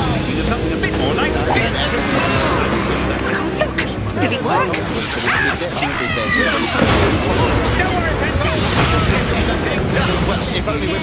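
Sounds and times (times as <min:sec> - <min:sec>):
cartoon character voices: 0:00.8 - 0:07.8.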